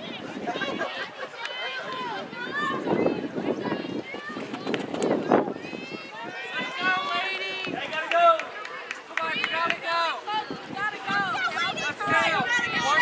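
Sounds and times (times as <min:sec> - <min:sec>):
spectators shouting and cheering: 0:00.0 - 0:13.0.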